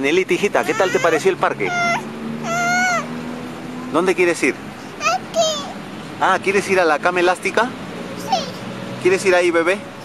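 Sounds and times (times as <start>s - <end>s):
girl's high-pitched vocal sound: 0.6s - 3.1s, 4.9s - 5.8s, 8.2s - 8.7s.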